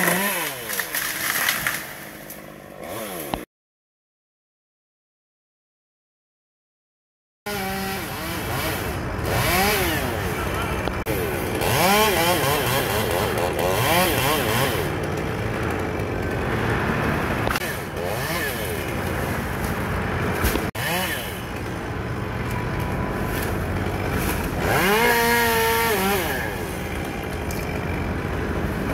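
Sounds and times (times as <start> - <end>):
chainsaw revving: 0.0 - 2.0, 2.7 - 3.5, 7.5 - 21.8, 23.3 - 28.9.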